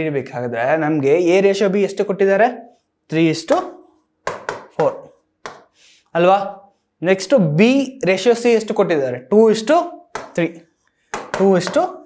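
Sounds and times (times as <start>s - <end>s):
marker tapping on whiteboard: 3.5s - 5.8s, 10.1s - 12.0s.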